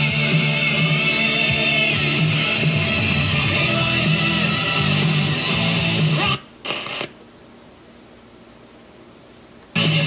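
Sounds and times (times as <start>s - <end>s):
rock music from a radio: 0.0s - 7.1s, 9.7s - 10.0s.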